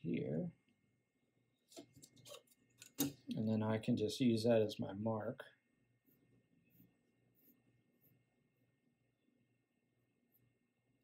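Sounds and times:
pencil scratching paper: 5.9 - 8.9, 9.9 - 10.8.

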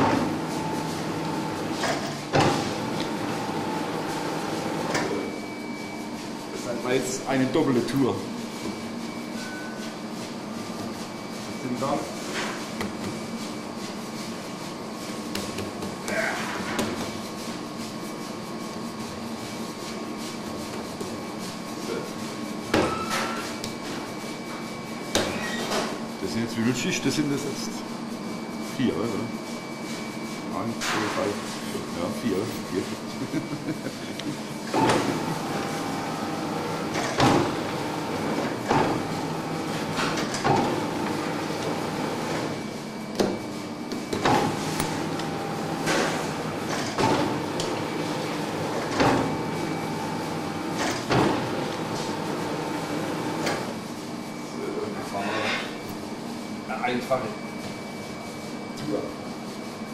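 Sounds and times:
dough sheeter motor running: 0.0 - 59.9.

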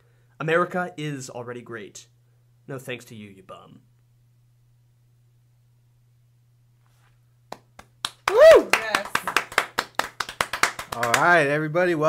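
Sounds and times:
people clapping: 7.5 - 11.5.

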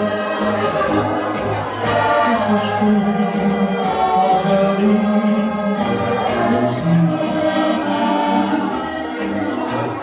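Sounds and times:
accordion dance music: 0.0 - 10.0.

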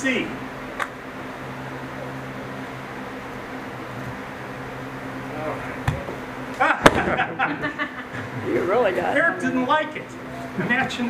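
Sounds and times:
low room hum: 0.0 - 11.0
sharp slap: 6.8 - 7.2.

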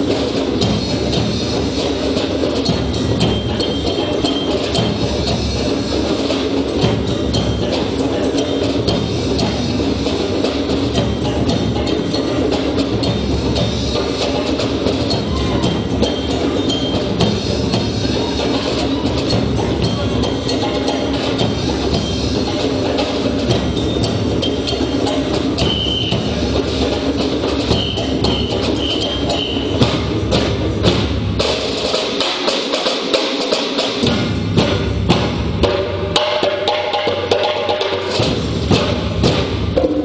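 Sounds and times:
bass drums: 0.0 - 32.3, 33.8 - 40.0
bass drums booming: 29.7 - 31.8, 34.0 - 36.2.

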